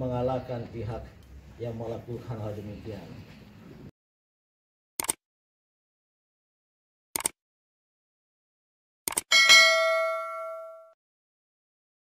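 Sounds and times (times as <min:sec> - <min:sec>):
quick double click: 0:05.0 - 0:05.2, 0:07.2 - 0:07.4, 0:09.1 - 0:09.3
bright bell ding: 0:09.3 - 0:11.0.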